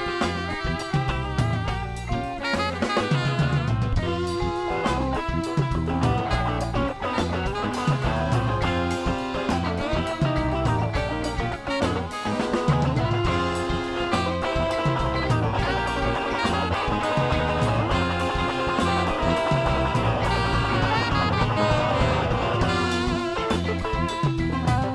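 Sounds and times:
drum kit with cymbals: 0.0 - 24.9
instrumental band music: 0.0 - 24.9.

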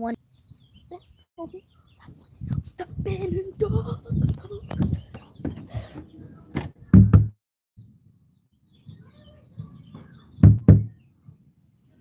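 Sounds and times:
knocks on a door: 6.9 - 7.4, 10.4 - 10.9.

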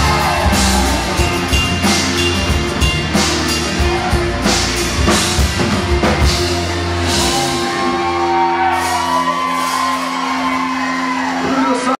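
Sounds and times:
crowd whooping and shouting: 0.0 - 5.5, 6.7 - 12.0
guitars and bass chord ringing: 0.0 - 11.4.

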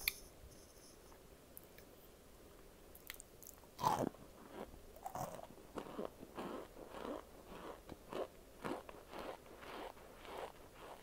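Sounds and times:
chewing crunches: 3.0 - 11.0.

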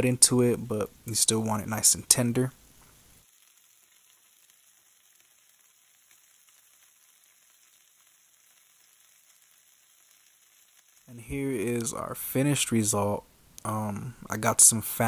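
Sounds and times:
scallops sizzling in oil: 2.6 - 12.7.

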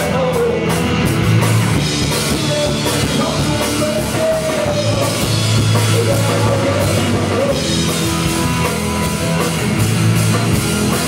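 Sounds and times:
band playing loud rock music: 0.0 - 11.0
drum kit: 0.0 - 11.0
electric guitar: 0.0 - 11.0.

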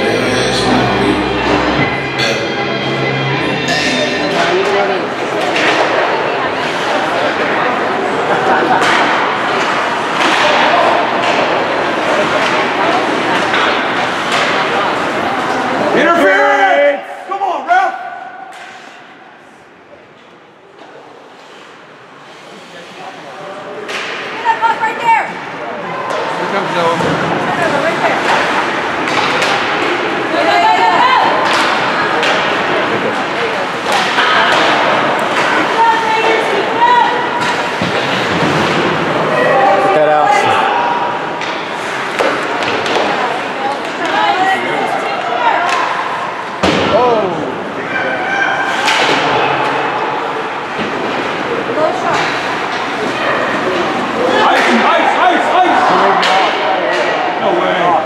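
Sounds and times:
hockey sticks and puck clacking: 3.7 - 7.4, 8.6 - 15.7, 18.5 - 19.0, 23.8 - 24.8, 26.0 - 39.4, 41.3 - 46.9, 48.7 - 49.8, 50.6 - 57.3.

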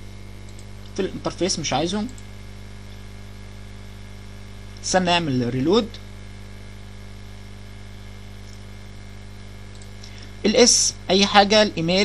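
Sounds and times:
electrical mains hum: 0.0 - 12.0
man speaking: 1.0 - 2.2, 4.8 - 6.0, 10.4 - 12.0.

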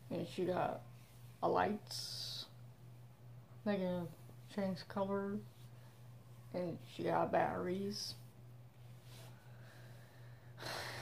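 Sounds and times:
steady low hum: 0.0 - 11.0
person speaking: 3.6 - 5.5, 6.4 - 8.3.

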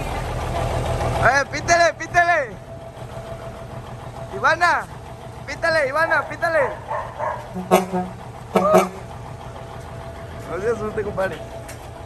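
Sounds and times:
truck diesel engine idling: 0.0 - 12.0.

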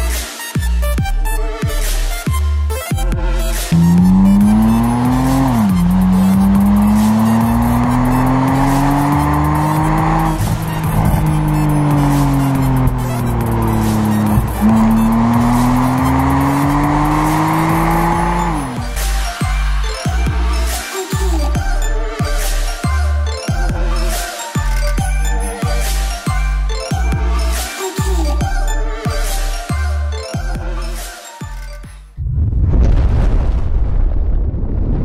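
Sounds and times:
car engine accelerating hard: 3.7 - 19.4.

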